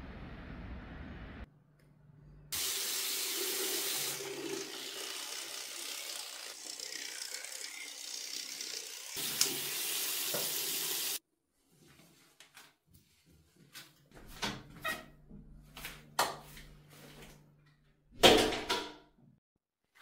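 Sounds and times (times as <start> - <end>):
tap water splashing into basin: 9.2 - 10.9.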